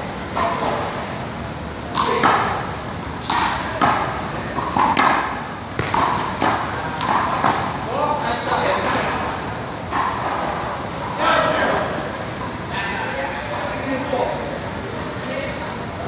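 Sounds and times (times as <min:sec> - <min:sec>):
rubber ball smacking wall: 0:05.8 - 0:06.5.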